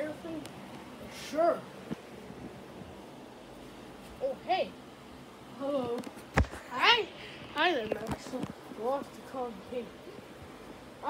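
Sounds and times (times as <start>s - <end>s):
faint steady background noise: 0.0s - 11.0s.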